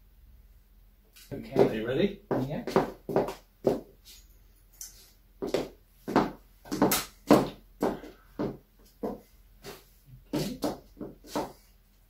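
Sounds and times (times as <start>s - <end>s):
footsteps on hard floor: 1.2s - 4.3s, 5.0s - 11.7s.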